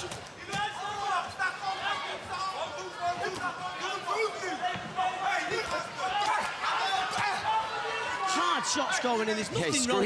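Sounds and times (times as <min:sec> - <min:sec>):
men talking and shouting: 0:00.0 - 0:10.0
noisy arena crowd: 0:00.0 - 0:10.0.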